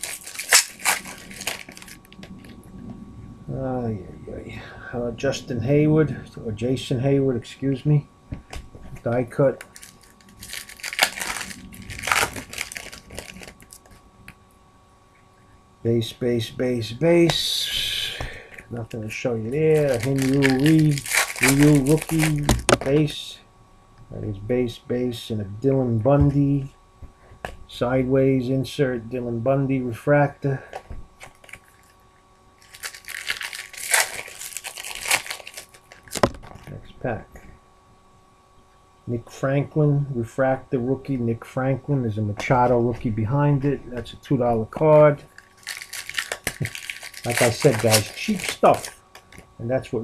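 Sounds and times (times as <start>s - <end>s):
wrapper crinkling and rustling: 0.0s - 2.6s, 9.4s - 14.0s, 19.6s - 23.0s, 31.2s - 32.0s, 32.6s - 36.8s, 45.2s - 49.4s.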